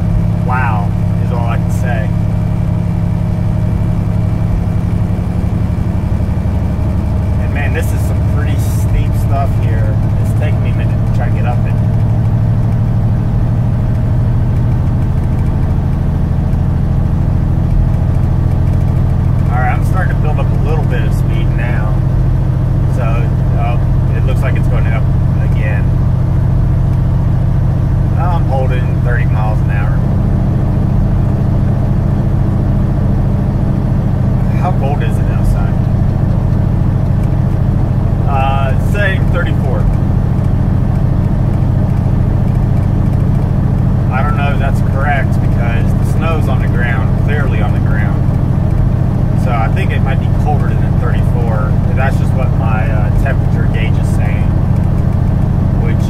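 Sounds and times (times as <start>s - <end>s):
truck diesel engine drone: 0.0s - 56.0s.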